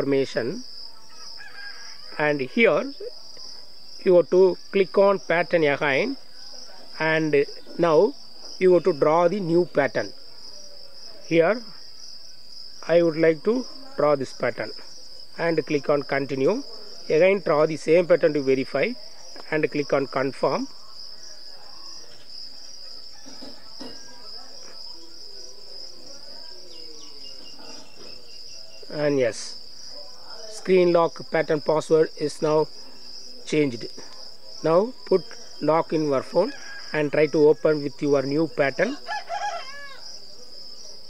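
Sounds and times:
crickets chirring: 0.0 - 41.0
insects trilling: 0.0 - 41.0
rooster crowing: 0.8 - 3.0, 21.1 - 25.1, 36.3 - 37.9, 38.8 - 40.9.

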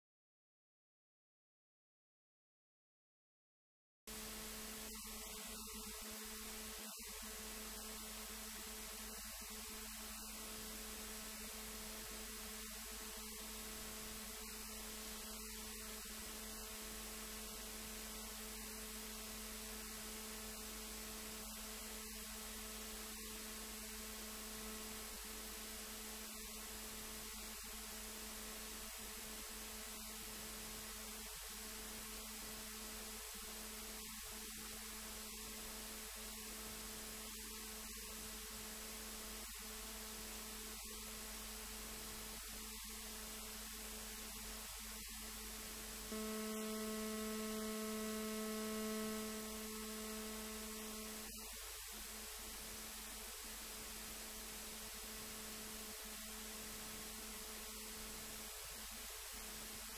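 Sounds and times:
electrical hum: 4.1 - 59.9
faint hiss: 4.1 - 59.9.

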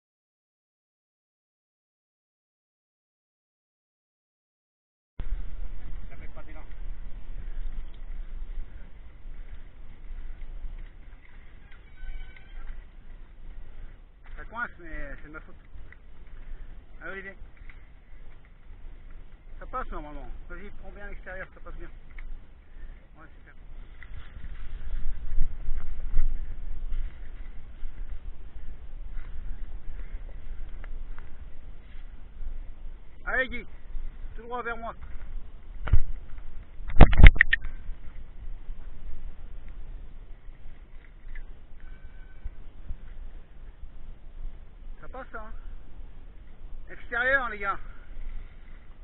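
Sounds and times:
mountain bikes clattering on trail: 5.2 - 36.8, 37.6 - 49.0
wind rumble on microphone: 5.2 - 49.0.

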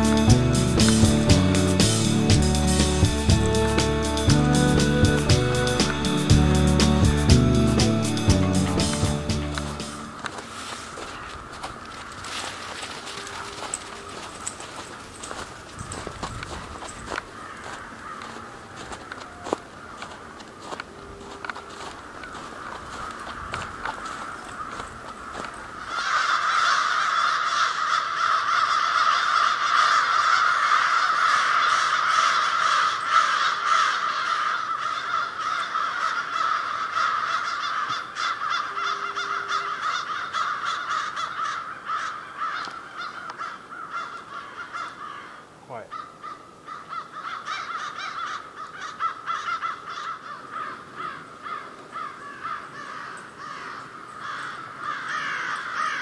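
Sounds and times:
crows cawing: 0.0 - 56.0.

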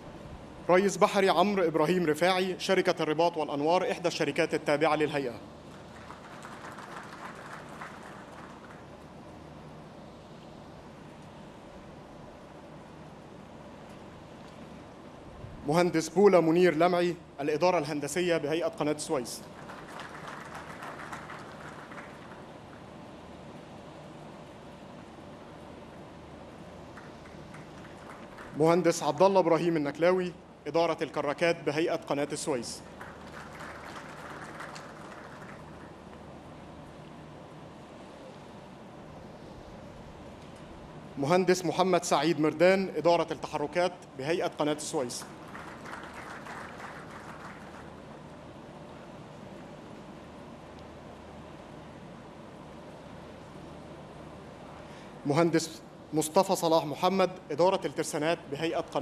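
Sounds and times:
light scattered applause: 5.6 - 9.1, 19.2 - 22.9, 26.9 - 29.3, 32.8 - 36.3, 44.7 - 48.3.

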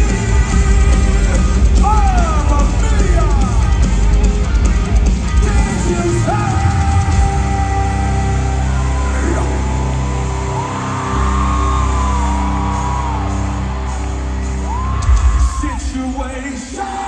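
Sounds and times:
live rock band with singing: 0.0 - 17.0.

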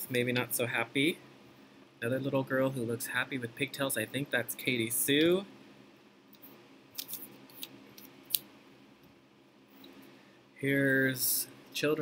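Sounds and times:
paper rustling: 7.0 - 7.7.

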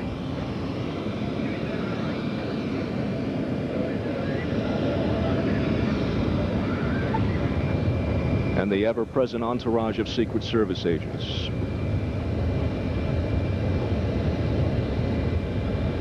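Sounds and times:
faint high whine: 0.0 - 16.0
jet engines idling: 0.0 - 16.0.

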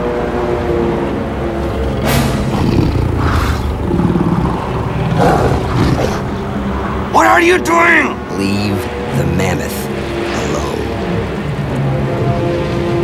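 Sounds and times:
tense orchestral score: 0.0 - 13.0
animal growls or roars: 1.4 - 6.5.

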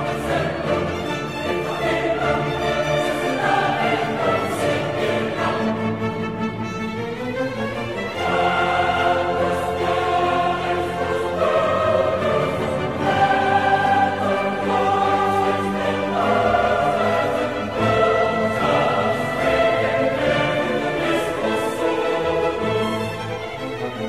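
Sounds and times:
choir singing slow chords: 0.0 - 24.0.

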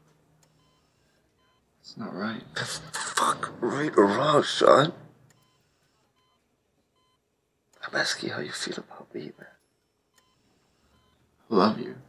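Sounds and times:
patient monitor beeping: 0.4 - 11.8.

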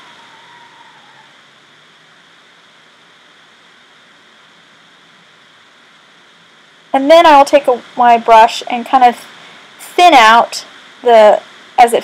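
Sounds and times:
faint recording hiss: 0.0 - 12.0.

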